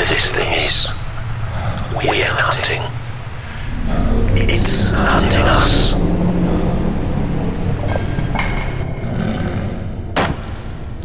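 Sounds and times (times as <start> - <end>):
low sci-fi ambient drone: 0.0 - 11.0.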